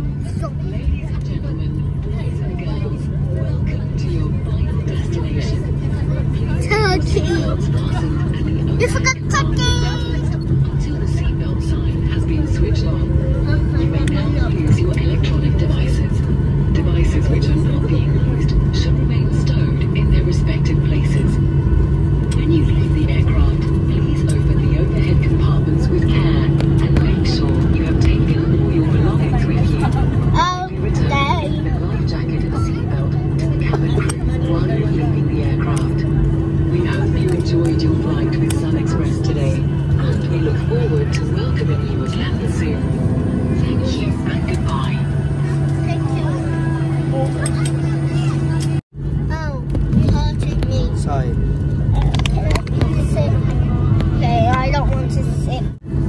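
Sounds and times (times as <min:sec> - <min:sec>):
jet engine hum in cabin: 0:00.0 - 0:56.0
passengers' voices: 0:00.0 - 0:56.0.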